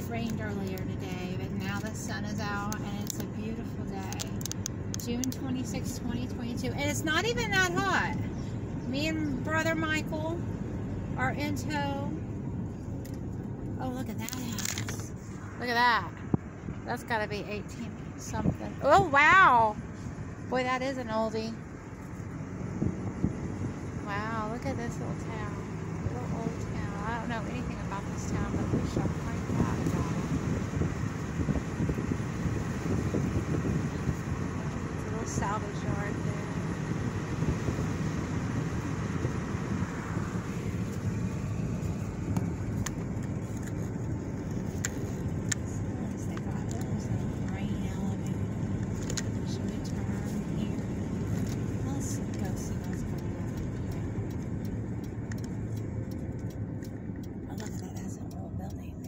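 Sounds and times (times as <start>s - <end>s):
tyres and engine rumbling: 0.0s - 59.0s.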